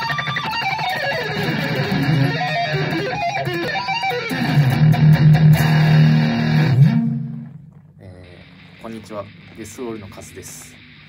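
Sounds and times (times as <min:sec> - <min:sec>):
distorted electric guitar riff: 0:00.0 - 0:11.0.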